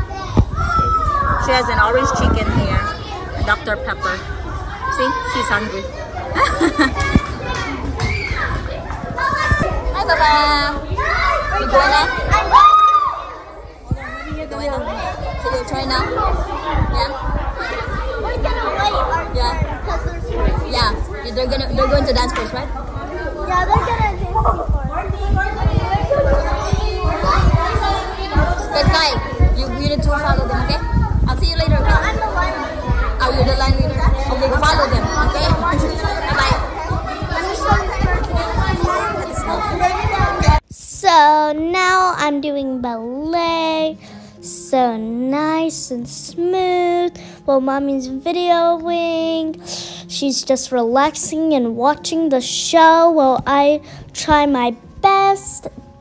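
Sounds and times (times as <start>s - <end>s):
children chattering and calling: 0.0s - 56.0s
short low thumps: 19.3s - 39.1s.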